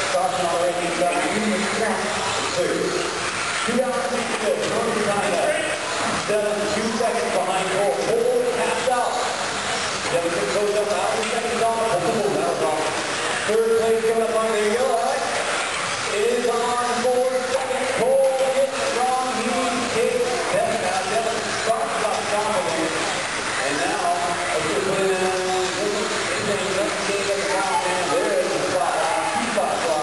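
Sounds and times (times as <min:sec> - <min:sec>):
electric rc cars racing: 0:00.0 - 0:30.0
man talking in echoing hall: 0:00.0 - 0:30.0.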